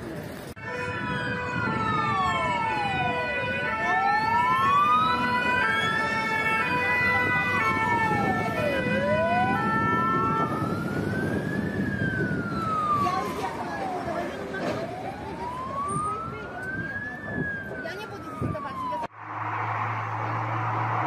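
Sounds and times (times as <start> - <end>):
traffic noise: 0.0 - 21.0
siren wailing: 0.6 - 21.0
siren with stepping tones: 0.6 - 21.0.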